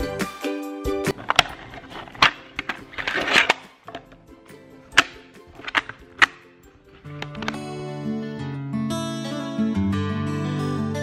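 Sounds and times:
cassette case clicking: 0:01.1 - 0:04.3, 0:04.9 - 0:07.7.

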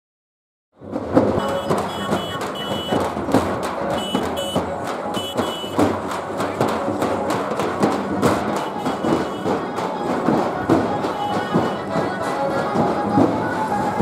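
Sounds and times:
frame drums beaten fast: 0:00.8 - 0:14.0.

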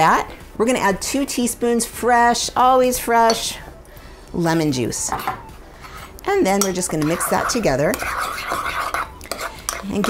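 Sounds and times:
spoon stirring in ceramic bowl: 0:05.0 - 0:10.0.

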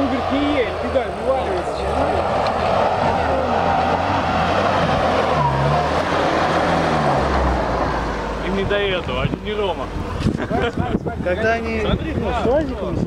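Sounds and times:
off-road vehicle engine under load: 0:00.0 - 0:13.0.

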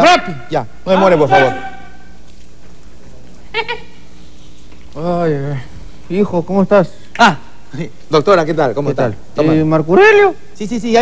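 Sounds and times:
low studio hum: 0:00.0 - 0:11.0.

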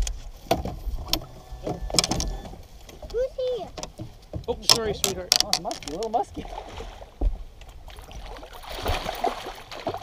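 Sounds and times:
fish splashing at surface: 0:08.0 - 0:10.0.

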